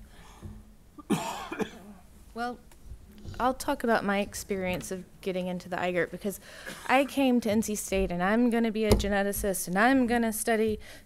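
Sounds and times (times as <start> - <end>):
person coughing: 1.0 - 2.0, 6.6 - 7.1.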